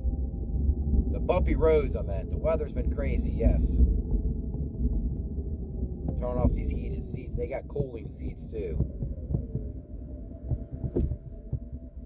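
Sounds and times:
road and engine rumble: 0.0s - 12.0s
steady hum: 0.0s - 12.0s
soft thumps from bumpy road: 2.4s - 11.8s.

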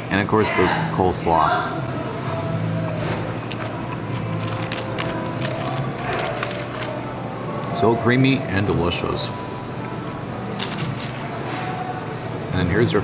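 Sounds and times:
crisp chewing crunches: 3.5s - 7.0s, 10.5s - 11.4s.

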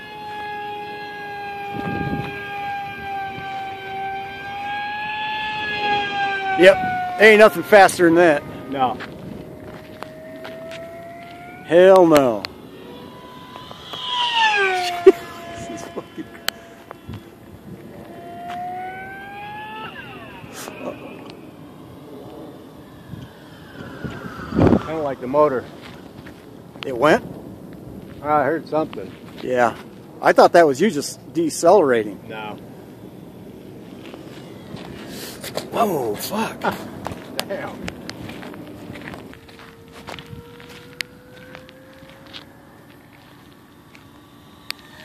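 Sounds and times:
rc plane motor whining: 0.0s - 27.5s, 31.0s - 35.7s, 37.2s - 45.0s
footsteps on gravel: 9.0s - 11.4s, 25.7s - 26.5s, 29.0s - 30.0s, 37.0s - 44.1s.

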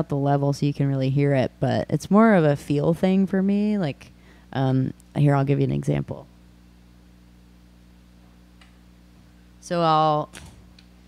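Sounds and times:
guitar amplifier hum: 0.0s - 11.0s.

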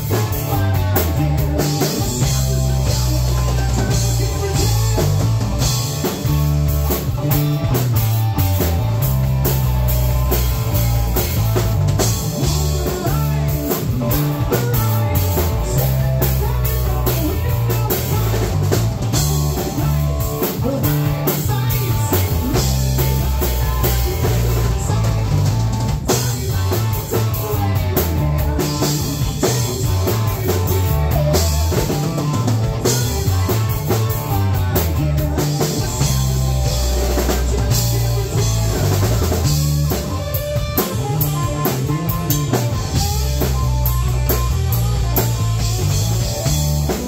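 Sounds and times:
drum kit: 0.0s - 47.0s
electric bass: 0.0s - 47.0s
electric guitar: 0.0s - 47.0s.

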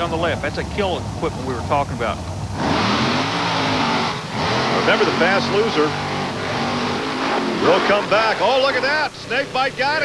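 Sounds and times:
truck engines revving hard: 0.0s - 10.0s.

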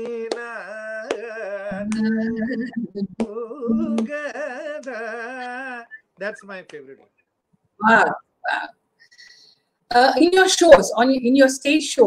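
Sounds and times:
man singing with gliding ornaments: 0.0s - 6.1s.

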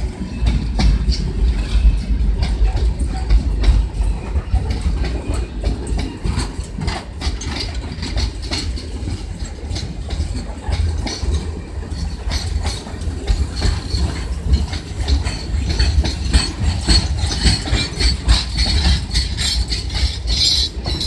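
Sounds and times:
freight train rumbling past: 0.0s - 21.0s
steel wheels clacking over rail joints: 0.0s - 21.0s.

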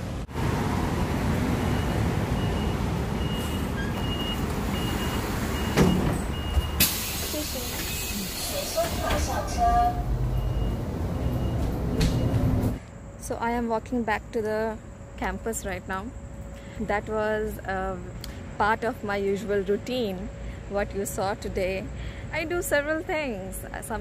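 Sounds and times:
bus engine and road rumble: 0.0s - 24.0s
loud hiss of air: 6.8s - 9.4s.

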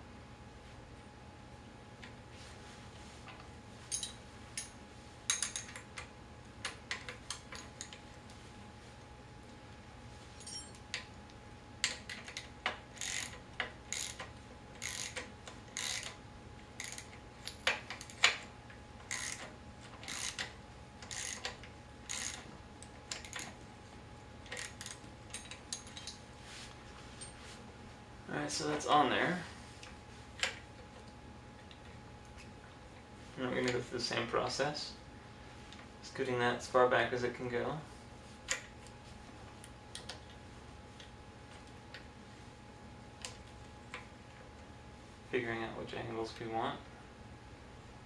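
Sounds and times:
ratchet wrench clicking: 11.8s - 16.2s, 16.8s - 18.3s, 19.1s - 22.4s.

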